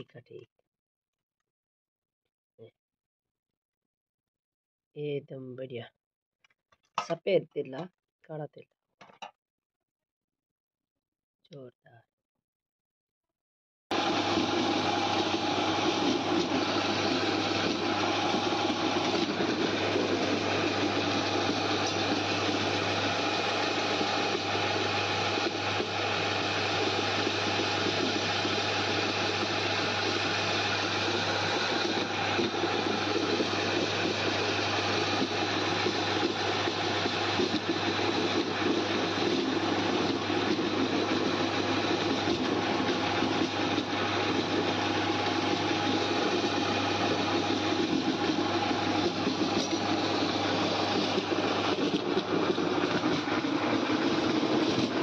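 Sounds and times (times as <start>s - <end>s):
low motor hum: 13.9s - 55.0s
mill grinding noise: 13.9s - 55.0s.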